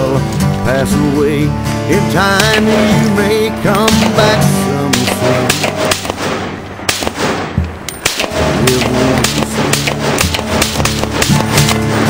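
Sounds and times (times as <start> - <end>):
country song with guitar: 0.0 - 6.8, 7.5 - 12.0
rifle shots: 2.4 - 12.0.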